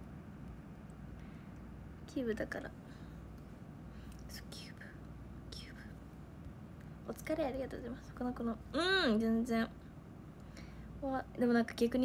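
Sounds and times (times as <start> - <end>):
low steady hum: 0.0 - 12.0
woman whispering: 4.3 - 6.0.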